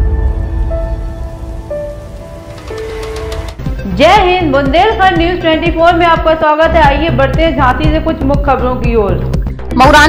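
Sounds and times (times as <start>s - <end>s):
low rumbling noise: 0.0s - 5.4s.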